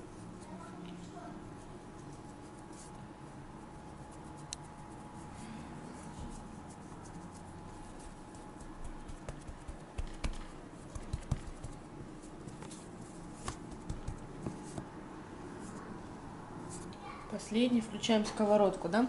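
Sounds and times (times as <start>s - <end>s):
faint steady hum: 0.0s - 19.0s
hands patting dough: 5.9s - 15.0s.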